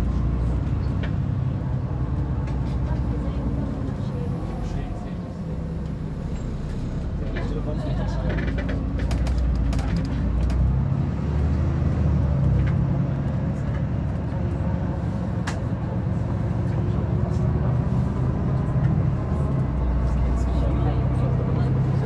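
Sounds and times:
bus engine: 0.0 - 22.0
road noise: 0.0 - 22.0.

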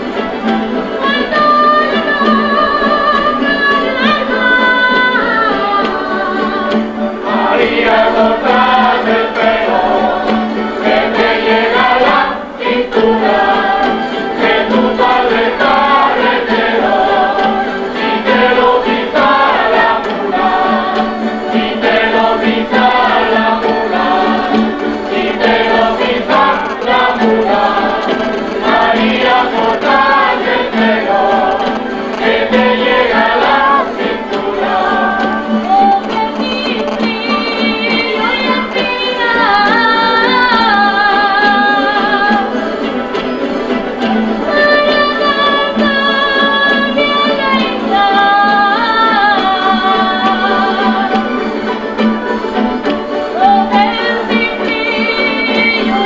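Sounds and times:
folk group singing in chorus: 0.0 - 56.0
guitar accompaniment: 0.0 - 56.0.

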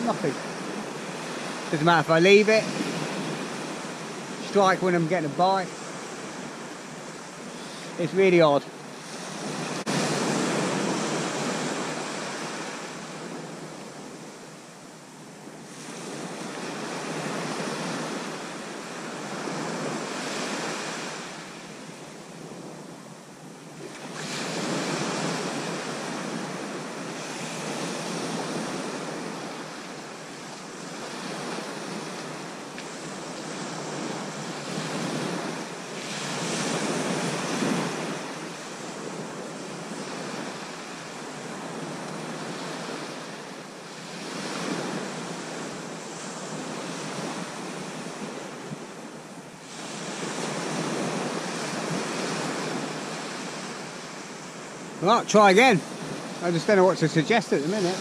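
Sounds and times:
waves washing up a beach: 0.0 - 58.0.

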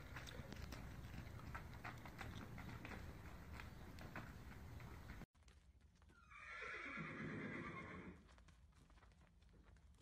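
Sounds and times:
horse whinnying: 6.2 - 8.2.

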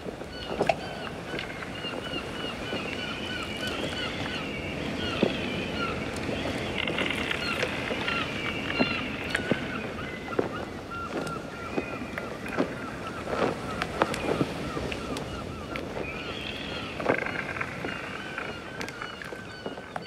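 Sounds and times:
wind: 0.0 - 20.0
birds calling in high cries: 0.3 - 20.0.

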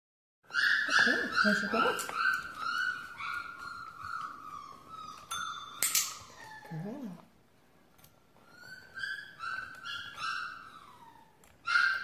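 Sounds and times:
small bell ringing: 5.3 - 6.4.

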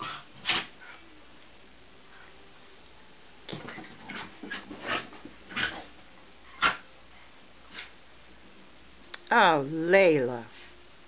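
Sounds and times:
dogs growling and barking: 3.5 - 6.8.

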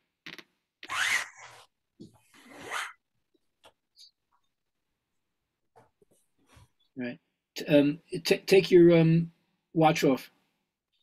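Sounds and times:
strap webbing rasping through buckle: 0.3 - 3.0.

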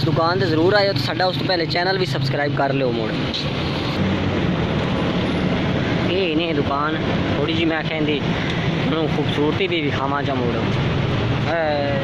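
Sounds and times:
engine hum: 0.0 - 12.0
street noise: 0.0 - 12.0.

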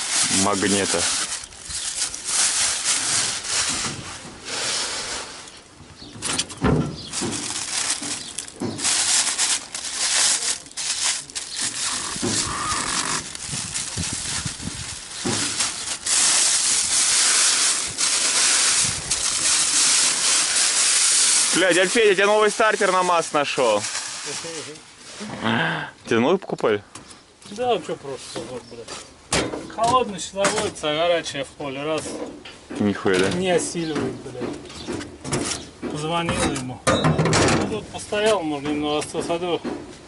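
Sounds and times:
plastic bags crinkling: 0.0 - 4.2, 6.3 - 25.0.

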